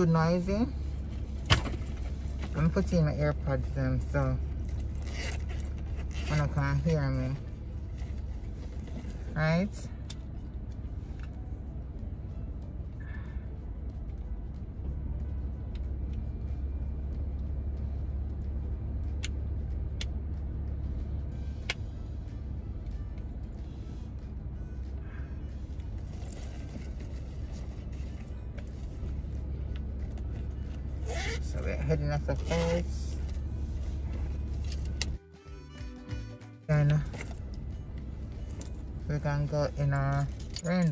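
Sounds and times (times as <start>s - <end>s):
low hum in car cabin: 0.0s - 40.9s.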